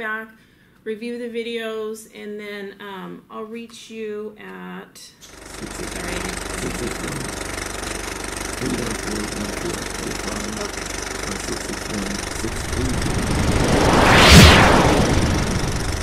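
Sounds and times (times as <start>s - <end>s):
low mechanical rumble: 5.3s - 16.0s.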